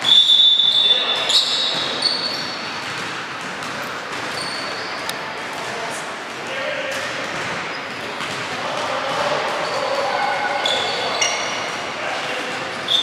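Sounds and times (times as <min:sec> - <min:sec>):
voices in a hall: 0:00.0 - 0:13.0.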